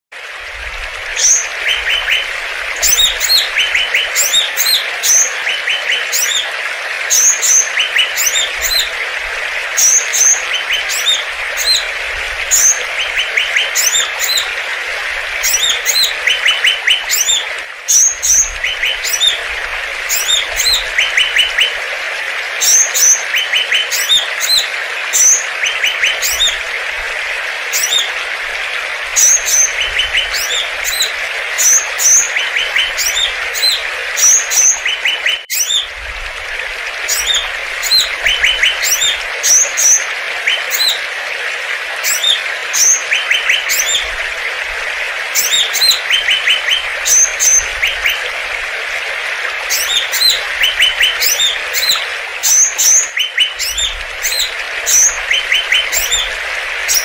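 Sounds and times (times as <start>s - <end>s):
songbirds chirping and trilling: 0.9s - 21.8s, 22.6s - 26.6s, 29.1s - 35.9s, 45.4s - 48.3s, 49.7s - 57.0s.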